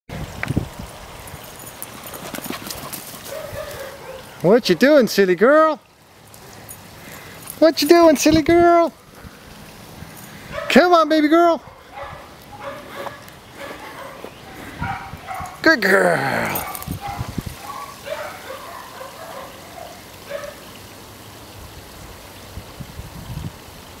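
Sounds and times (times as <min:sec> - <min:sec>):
water trickling: 0:00.1 - 0:24.0
footsteps on dirt: 0:12.0 - 0:15.6.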